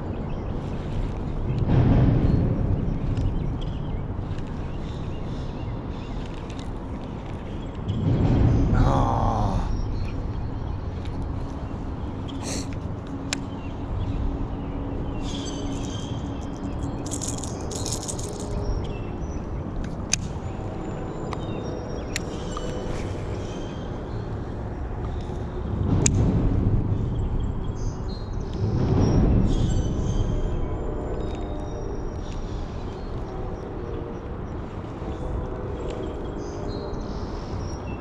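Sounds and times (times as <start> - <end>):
bursts of low noise: 0.0 - 21.4
wind noise on microphone: 0.0 - 38.0.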